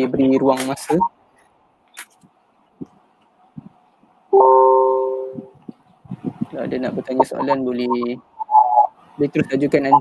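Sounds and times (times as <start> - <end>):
electronic notification chime: 4.4 - 5.5.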